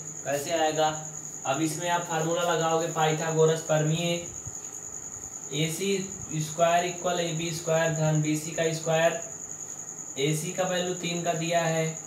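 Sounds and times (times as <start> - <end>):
cricket chirring: 0.0 - 12.0
man's voice: 5.5 - 9.2, 10.2 - 12.0.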